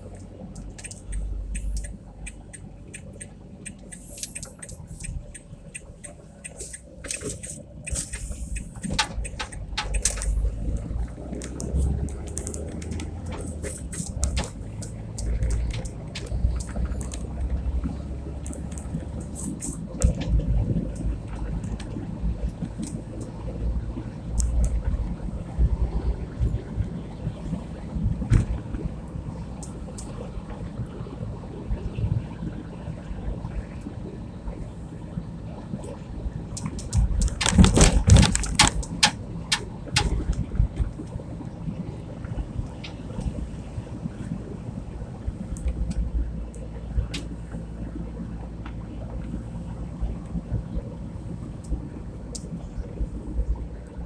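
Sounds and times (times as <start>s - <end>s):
car engine and tyre drone: 0.0s - 54.0s.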